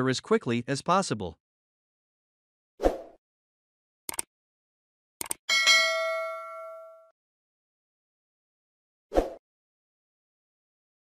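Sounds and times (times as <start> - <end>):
notification bell ding: 5.5 - 7.1.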